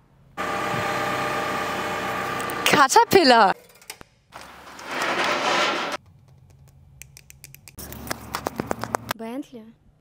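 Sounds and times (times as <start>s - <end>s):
diesel engine running: 0.4s - 3.5s.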